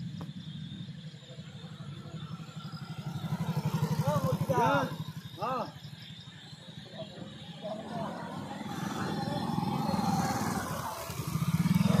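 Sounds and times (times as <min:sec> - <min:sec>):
crickets chirping: 0:00.0 - 0:12.0
motorcycle engine idling: 0:00.0 - 0:12.0.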